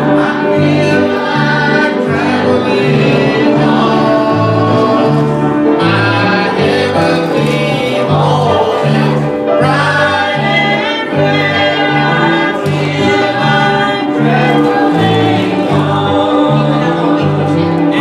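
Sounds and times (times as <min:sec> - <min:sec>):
group singing gospel song: 0:00.0 - 0:18.0
instrumental backing with bass: 0:00.0 - 0:18.0.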